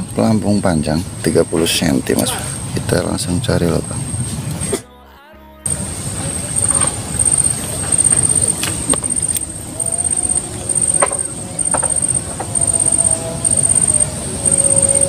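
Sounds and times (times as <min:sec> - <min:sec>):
faint clicks: 0:05.7 - 0:15.0
high-pitched insect trill: 0:05.7 - 0:15.0.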